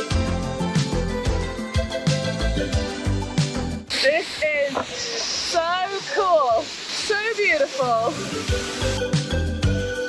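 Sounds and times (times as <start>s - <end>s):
background music with beat: 0.0s - 4.2s, 8.0s - 10.0s
waterfall rushing: 3.9s - 9.1s.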